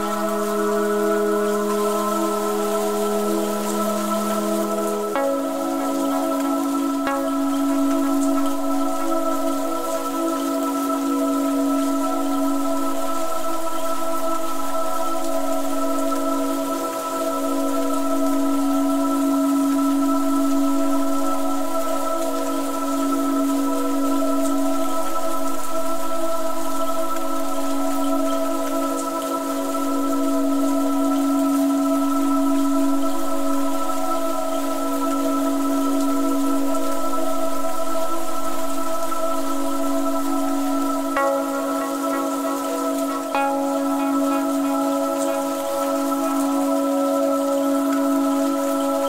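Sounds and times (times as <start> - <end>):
rainfall hiss: 0.0 - 49.0
slow ambient music: 0.0 - 49.0.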